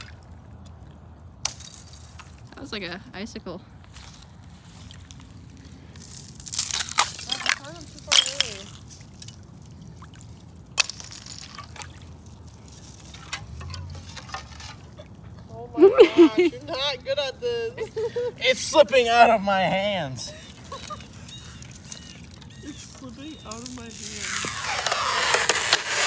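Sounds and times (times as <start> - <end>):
water splashing and sloshing: 0.0 - 3.0, 3.7 - 26.0
ice dropped in water: 6.4 - 9.5.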